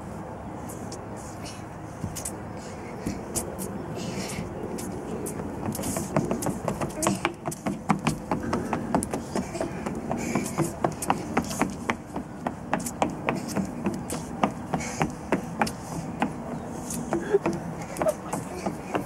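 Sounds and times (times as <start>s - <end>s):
feet stamping on deck boards: 5.2s - 19.0s.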